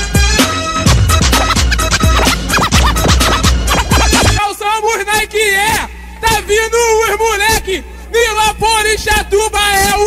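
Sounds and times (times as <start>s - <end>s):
funk track with kick drum: 0.1s - 4.4s
record scratching: 1.2s - 4.4s.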